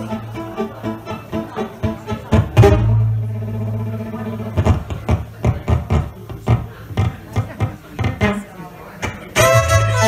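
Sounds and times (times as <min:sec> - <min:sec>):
acoustic string band playing: 0:00.0 - 0:10.0.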